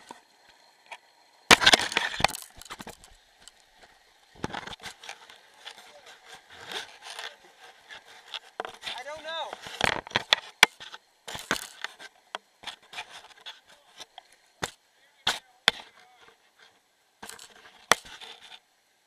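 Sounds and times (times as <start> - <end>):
knocks and scraping on camera housing: 1.5 - 3.6, 4.4 - 18.6.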